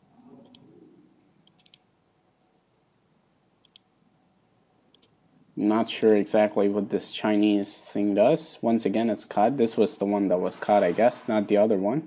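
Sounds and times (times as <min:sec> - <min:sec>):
computer mouse button clicking: 0:01.4 - 0:01.8, 0:03.6 - 0:03.9, 0:04.9 - 0:05.1.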